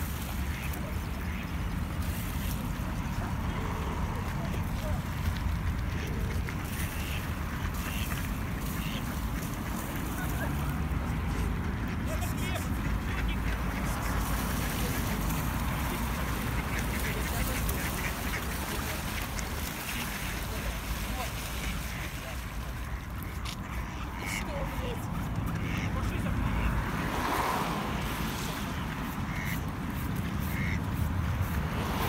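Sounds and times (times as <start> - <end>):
ducks quacking: 0.0 - 32.0.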